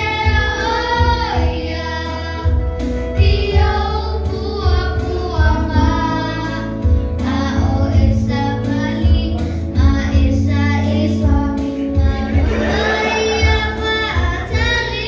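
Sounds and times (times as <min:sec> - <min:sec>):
children singing into microphones: 0:00.0 - 0:15.0.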